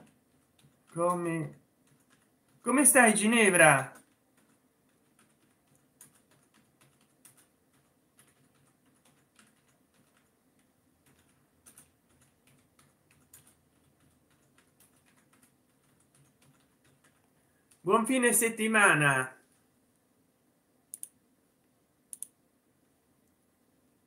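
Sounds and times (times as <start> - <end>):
keyboard typing: 0.0 - 3.0, 3.8 - 17.8, 20.9 - 21.2, 22.1 - 22.4
man's voice: 2.7 - 4.0, 17.9 - 19.4.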